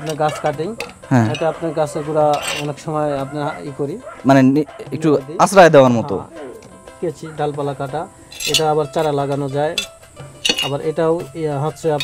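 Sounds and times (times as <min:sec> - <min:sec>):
metal hand tools clinking: 0:00.0 - 0:03.0, 0:08.2 - 0:11.0, 0:11.6 - 0:12.0
man talking: 0:00.0 - 0:06.3.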